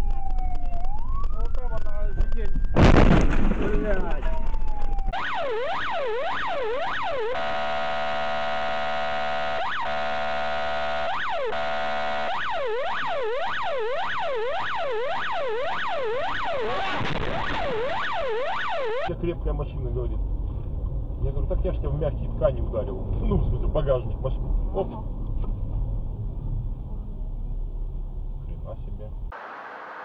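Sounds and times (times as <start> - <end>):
electronic emergency siren: 0.0 - 2.9, 3.9 - 19.1.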